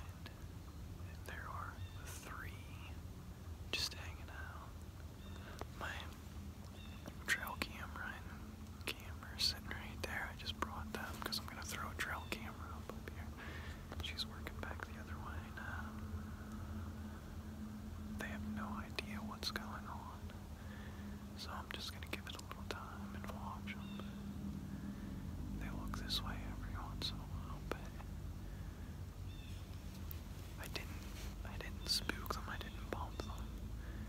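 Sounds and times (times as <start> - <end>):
man whispering: 0.0 - 3.0, 3.7 - 6.3, 7.0 - 16.2, 18.1 - 24.2, 25.6 - 28.6, 30.5 - 34.0
faint low hum: 0.0 - 34.0.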